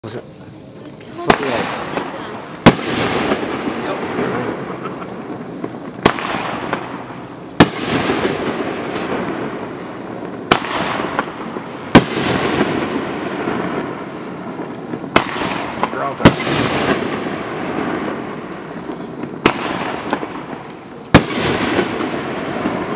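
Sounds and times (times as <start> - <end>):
crackling hiss of fireworks: 0.0 - 22.9
firework bangs: 1.0 - 22.9.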